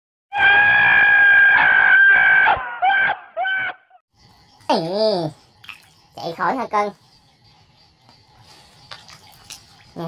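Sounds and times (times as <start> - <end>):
frog screaming: 0.3 - 3.8.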